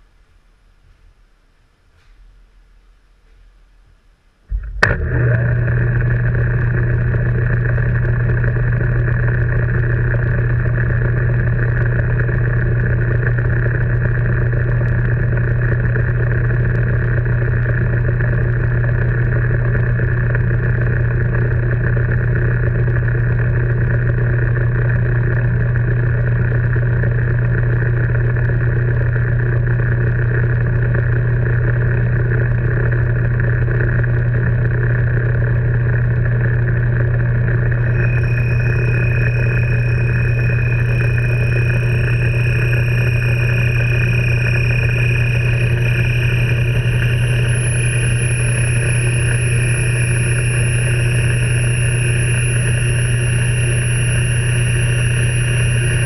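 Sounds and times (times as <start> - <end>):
metal lathe motor humming: 4.5 - 21.3, 34.2 - 56.0.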